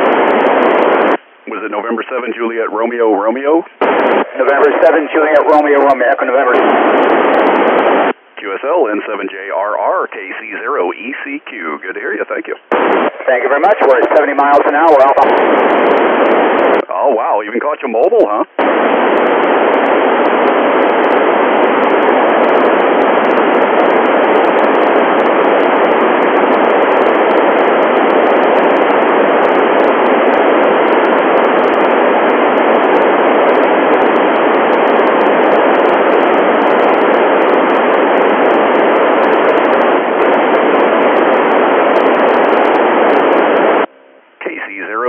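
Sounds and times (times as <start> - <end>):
radio static hiss: 0.0 - 45.0.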